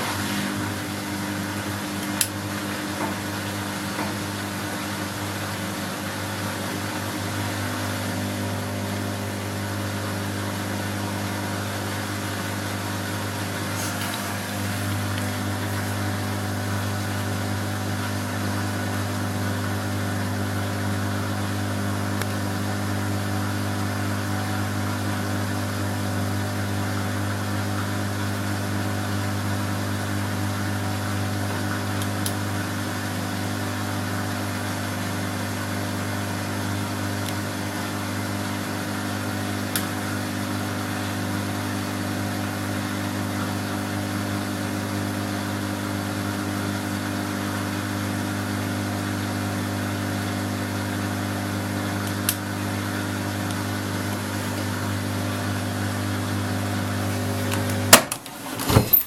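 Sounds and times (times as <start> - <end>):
washing machine motor hum: 0.0 - 59.0.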